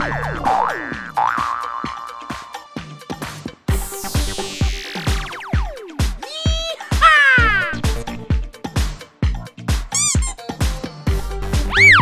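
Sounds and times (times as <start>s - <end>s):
upbeat background music: 0.0s - 12.0s
short squeak: 9.9s - 10.4s.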